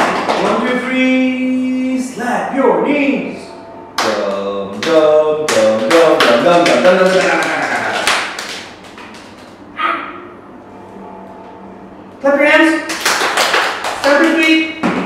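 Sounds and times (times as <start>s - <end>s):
hand claps: 0.0s - 0.7s, 4.0s - 9.6s, 12.9s - 15.0s.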